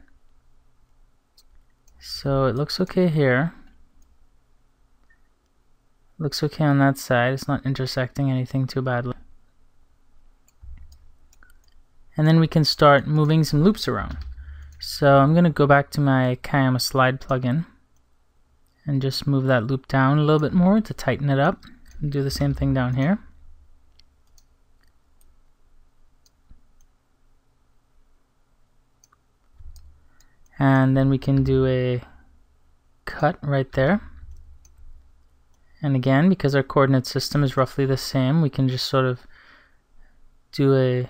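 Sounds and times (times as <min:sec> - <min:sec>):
low steady hum: 0:00.0 - 0:41.0
computer mouse clicks: 0:10.4 - 0:11.8, 0:23.9 - 0:25.4, 0:29.0 - 0:31.5
soft low thump: 0:10.6 - 0:11.0, 0:14.0 - 0:14.7.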